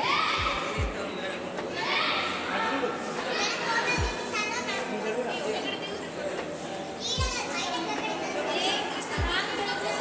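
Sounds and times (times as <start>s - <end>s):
child shouting: 0.0s - 0.8s
children playing: 0.0s - 10.0s.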